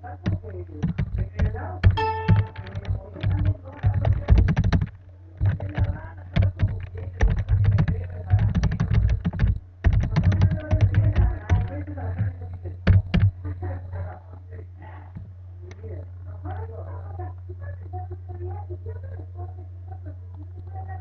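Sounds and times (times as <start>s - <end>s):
low steady hum: 0.0s - 21.0s
keyboard key clicks: 0.2s - 13.3s.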